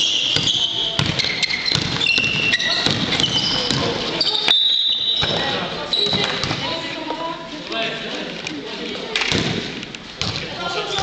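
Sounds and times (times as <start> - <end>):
basketball bouncing: 0.3 - 4.0, 9.3 - 11.0.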